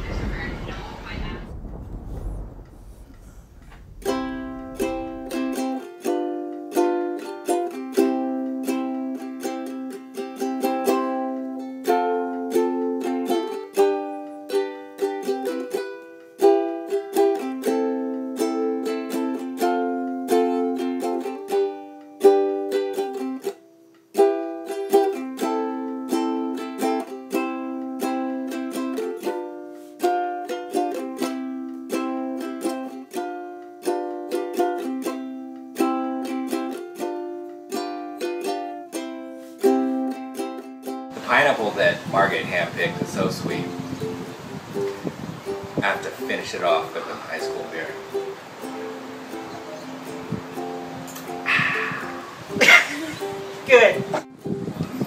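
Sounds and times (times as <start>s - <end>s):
solo ukulele playing: 3.8s - 55.0s.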